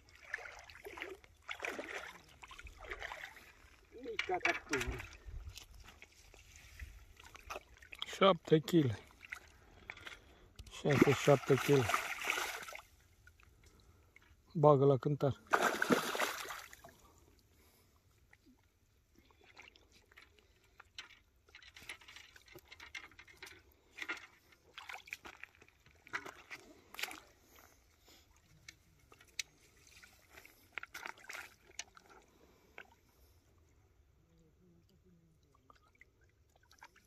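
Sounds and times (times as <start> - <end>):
shallow water splashing: 0.0 - 14.4, 15.4 - 27.6, 29.0 - 33.8.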